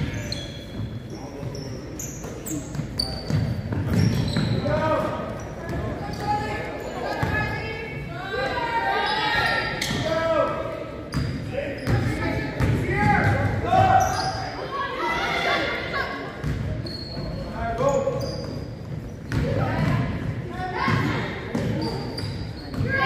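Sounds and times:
sneaker squeaks: 0:00.0 - 0:08.2, 0:08.9 - 0:23.0.

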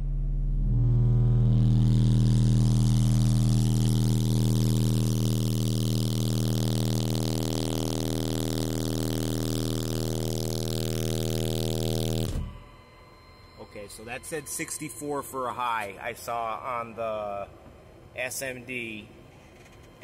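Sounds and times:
subwoofer bass test tone: 0:00.0 - 0:16.6.

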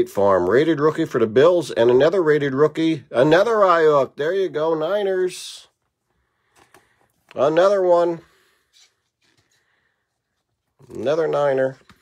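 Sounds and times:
man talking: 0:00.0 - 0:05.8, 0:07.3 - 0:08.4, 0:10.8 - 0:12.0
trading cards shuffling: 0:05.8 - 0:07.7, 0:08.4 - 0:12.0.

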